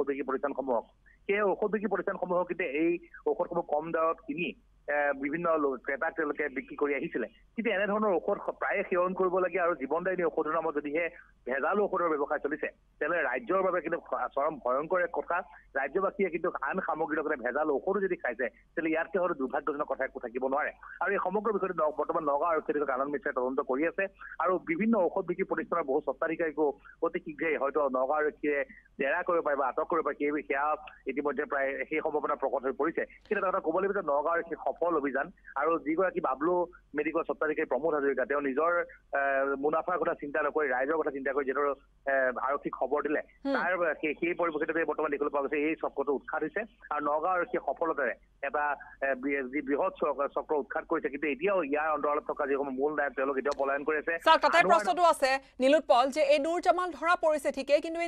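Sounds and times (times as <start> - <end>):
man talking over telephone: 0.0 - 55.0.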